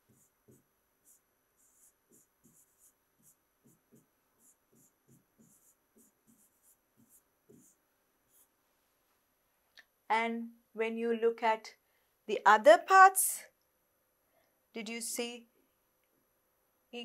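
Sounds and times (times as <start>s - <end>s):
stylus tapping and scratching on screen: 0.0s - 8.6s.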